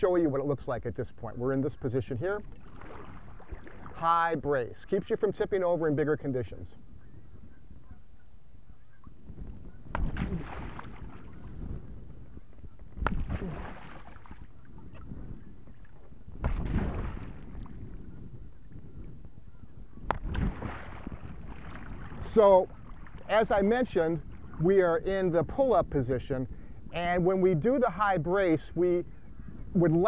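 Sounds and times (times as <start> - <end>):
paddle slapping water: 2.4 - 4.1, 8.8 - 24.7
water splashing: 2.4 - 4.1, 9.8 - 12.0, 12.9 - 17.9, 20.1 - 24.6.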